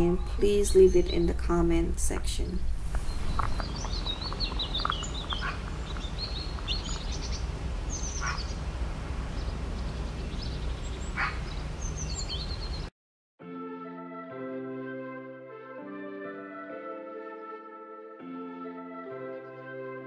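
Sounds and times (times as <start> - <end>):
low outdoor rumble: 0.0 - 12.9
birds chirping and calling: 2.9 - 12.9
music: 13.4 - 20.0.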